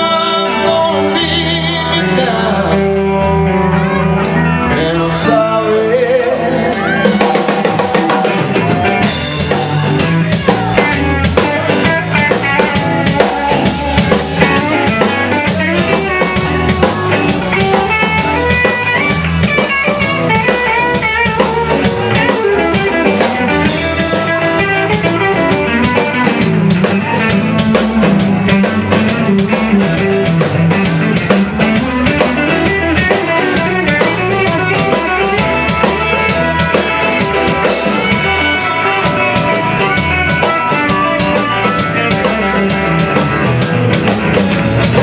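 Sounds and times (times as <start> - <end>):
rock band playing: 0.0 - 45.0.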